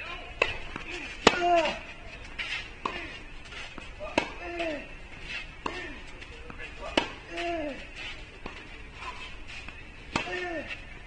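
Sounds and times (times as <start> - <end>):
tennis ball bouncing: 0.4 - 4.9, 5.5 - 7.6, 9.6 - 10.8
racket striking tennis ball: 0.4 - 7.6, 8.4 - 10.8.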